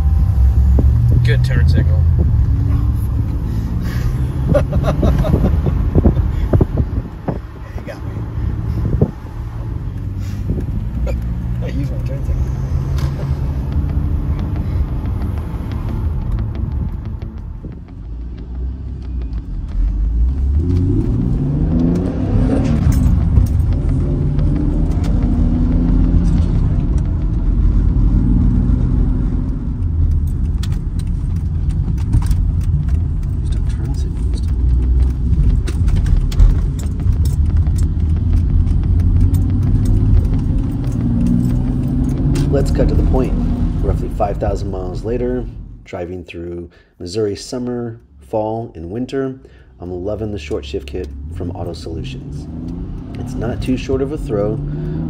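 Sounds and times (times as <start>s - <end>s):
car engine heard from cabin: 0.0s - 45.8s.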